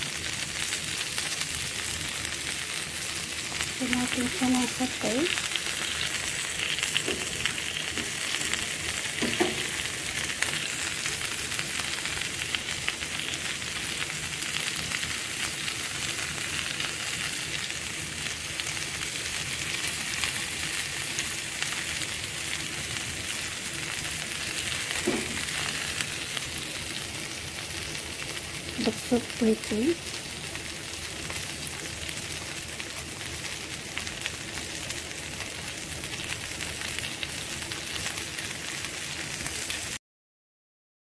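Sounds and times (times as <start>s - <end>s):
kebabs sizzling on grill pan: 0.0s - 40.0s.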